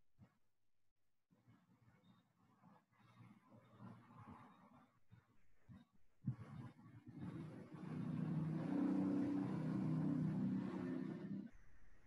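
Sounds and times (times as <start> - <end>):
vehicle engine passing by: 8.0 - 11.5.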